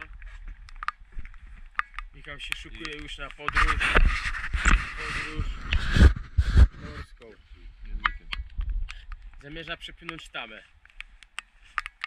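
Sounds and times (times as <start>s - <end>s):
gloved hand handling camera: 0.0s - 7.0s, 10.7s - 12.0s
rumbling knocks on microphone: 3.5s - 7.1s.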